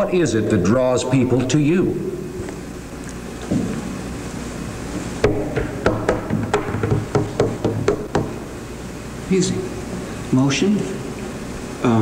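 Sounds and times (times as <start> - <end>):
sharp knocks: 5.2 - 8.5.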